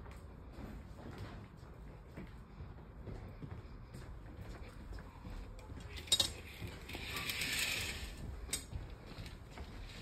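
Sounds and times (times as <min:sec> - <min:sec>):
curtain track clicks: 0:05.9 - 0:08.7
curtain sliding hiss: 0:06.0 - 0:08.3.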